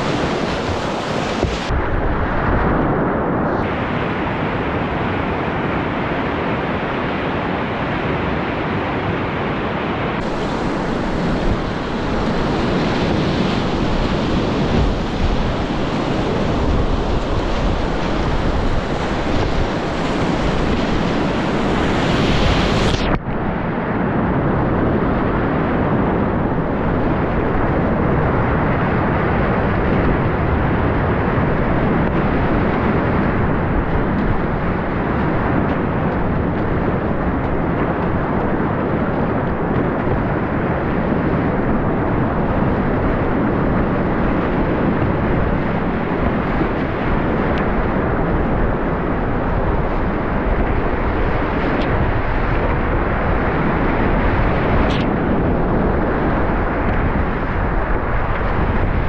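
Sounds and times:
whitewater rapids roaring: 0.0s - 2.4s, 8.9s - 22.9s
waves breaking over boat: 0.0s - 59.0s.

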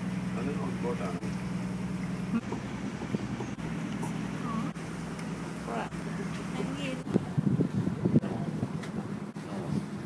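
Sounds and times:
boat engine humming: 0.0s - 10.0s.

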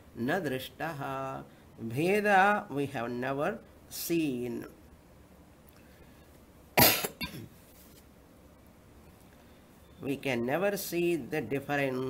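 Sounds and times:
person coughing: 6.8s - 7.6s.

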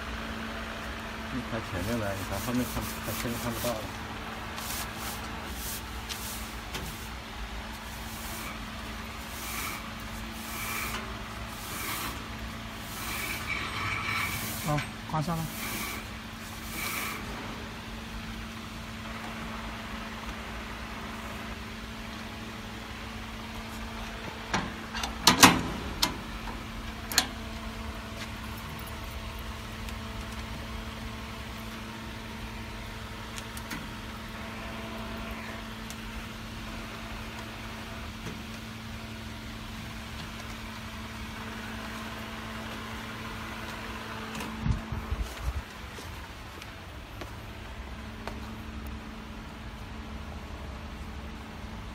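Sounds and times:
packaging machinery humming: 0.1s - 22.0s.

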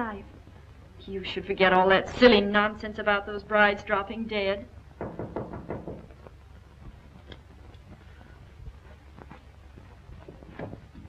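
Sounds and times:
knocking on a door: 5.0s - 6.2s
faint ticks: 6.2s - 10.0s.

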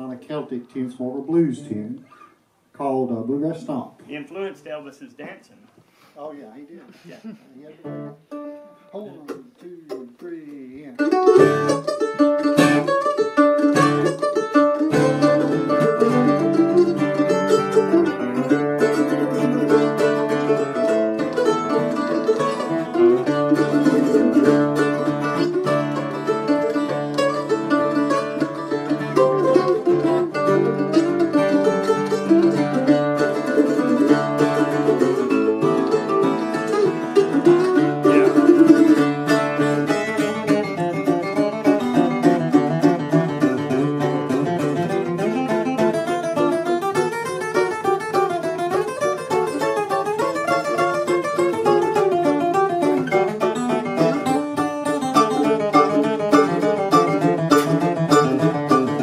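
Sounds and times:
mandolin playing bluegrass tune: 1.0s - 2.3s, 6.5s - 59.0s
acoustic guitar bass notes: 7.3s - 59.0s.

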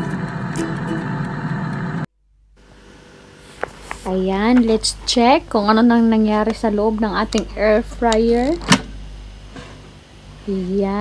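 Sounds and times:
air fryer fan whoosh: 0.0s - 2.0s.

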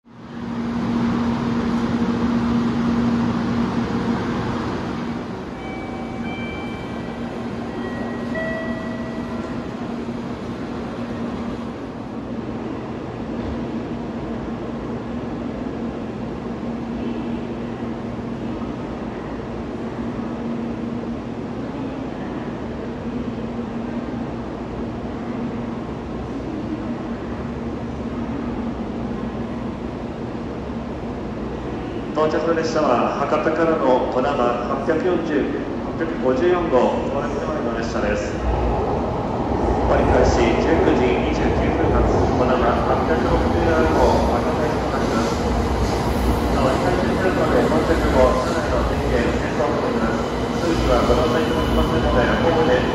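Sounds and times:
low train rumble: 0.0s - 52.9s.

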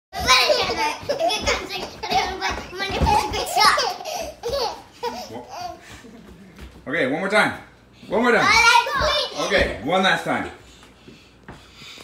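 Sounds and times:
baby laughing: 0.2s - 6.0s.

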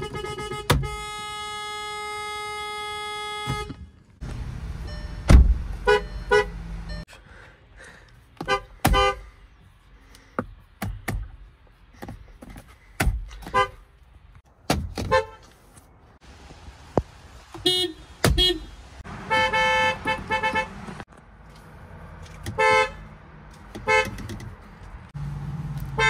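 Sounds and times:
car horn honking: 0.0s - 4.1s, 4.9s - 7.1s, 8.4s - 9.3s, 13.5s - 13.8s, 15.0s - 15.5s, 17.6s - 20.9s, 22.5s - 23.1s, 23.8s - 24.2s.

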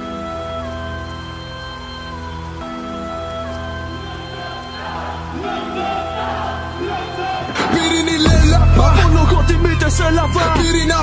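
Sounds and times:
hip-hop intro music with held chords: 5.7s - 11.0s.

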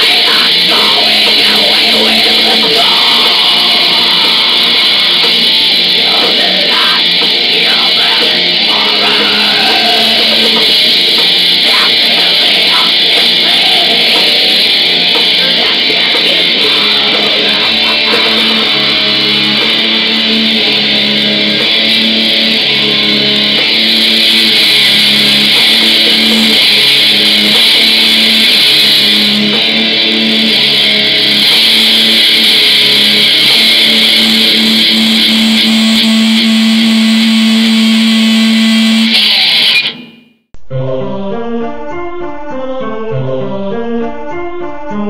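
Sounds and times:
distorted electric guitars: 0.0s - 41.1s
black metal music: 0.0s - 45.0s.

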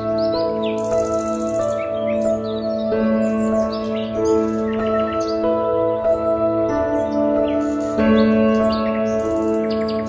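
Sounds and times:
birds chirping: 0.0s - 10.0s
calm slow piano music: 0.0s - 10.0s.

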